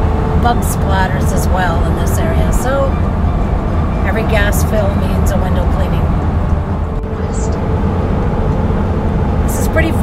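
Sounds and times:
van road noise rumble: 0.0 - 10.0.

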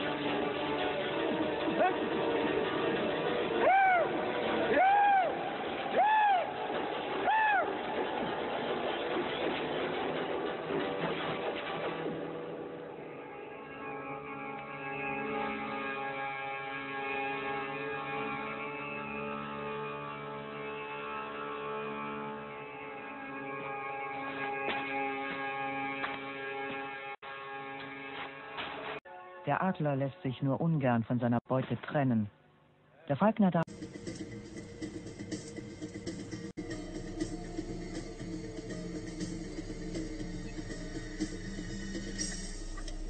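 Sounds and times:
documentary music with held tones: 0.0 - 32.4, 33.0 - 43.0.

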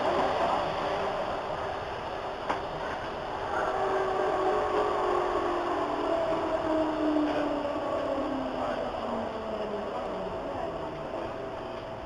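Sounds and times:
subway traction drive whine: 0.0 - 12.0
train running on track: 0.0 - 12.0.

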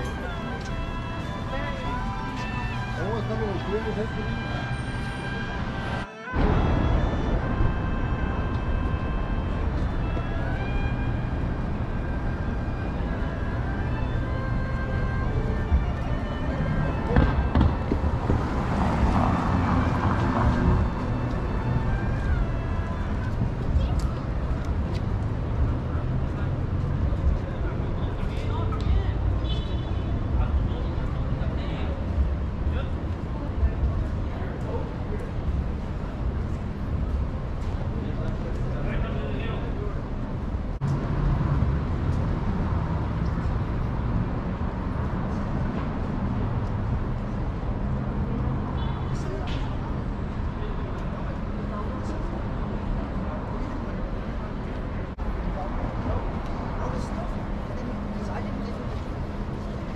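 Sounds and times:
music from shops: 0.0 - 59.9
passers-by talking: 0.0 - 59.9
traffic rumble: 0.0 - 59.9.

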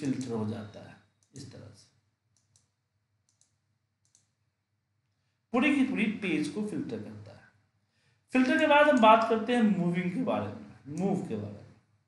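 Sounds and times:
computer mouse clicks: 0.0 - 0.4, 1.2 - 1.6, 2.3 - 4.4.

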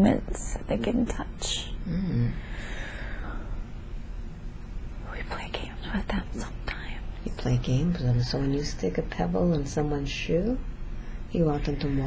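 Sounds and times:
low room hum: 0.0 - 12.0
woman whispering: 5.0 - 8.0.

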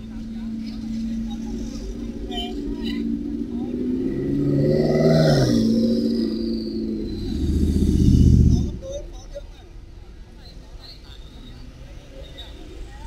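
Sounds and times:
vehicle engine driving past: 0.0 - 9.0
steady engine hum: 0.0 - 10.5.

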